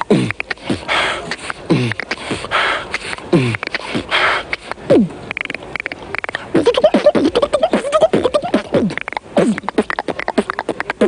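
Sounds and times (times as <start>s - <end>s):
hissing breath snares: 0.0s - 5.1s
beatboxing kick sounds: 0.0s - 11.0s
mouth clicks: 0.0s - 11.0s.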